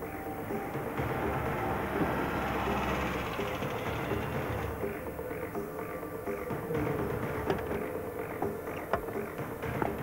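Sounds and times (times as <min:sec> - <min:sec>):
car engine running: 0:00.3 - 0:10.0.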